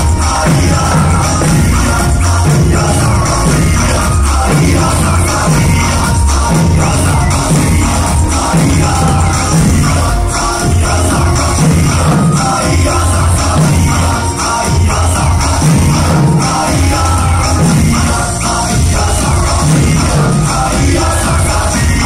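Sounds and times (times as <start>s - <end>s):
drums beating: 0.0s - 22.0s
folk music with singing: 0.0s - 22.0s.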